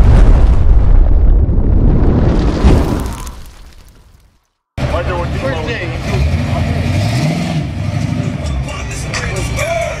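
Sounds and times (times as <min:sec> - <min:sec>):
car engine revving: 0:04.8 - 0:09.7.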